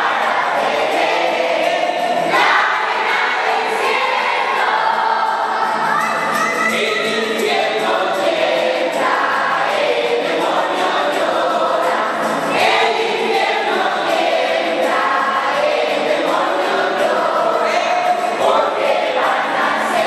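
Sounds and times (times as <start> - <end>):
congregation singing in unison: 0.0 - 20.0.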